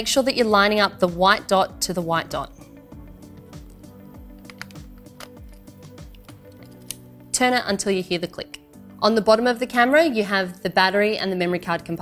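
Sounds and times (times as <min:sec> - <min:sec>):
background music with steady beat: 0:00.0 - 0:12.0
camera lens clicking onto mount: 0:04.4 - 0:07.0.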